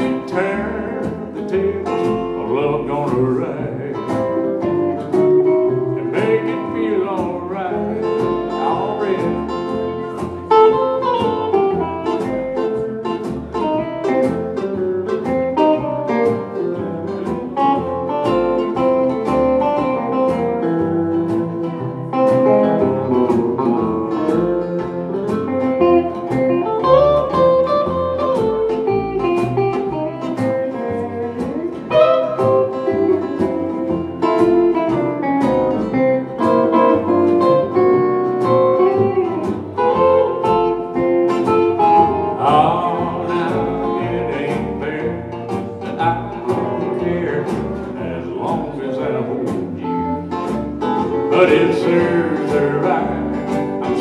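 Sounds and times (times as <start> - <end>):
bass: 0.0 - 54.0
steady drum beat: 0.0 - 54.0
strummed acoustic guitar: 0.0 - 54.0
electric guitar solo: 7.8 - 13.0, 13.6 - 42.4.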